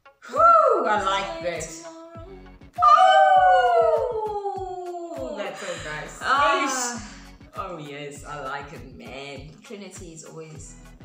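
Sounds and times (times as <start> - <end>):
music: 0.0 - 11.0
voice falling in pitch: 1.9 - 5.5.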